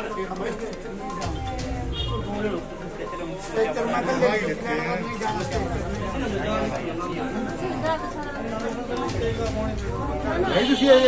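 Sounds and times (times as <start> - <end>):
indistinct crowd chatter: 0.0 - 11.0.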